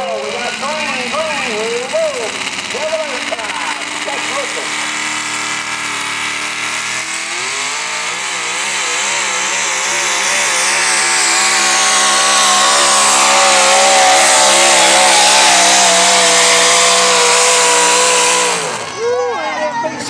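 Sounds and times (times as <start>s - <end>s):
truck engine at full throttle: 0.0s - 20.0s.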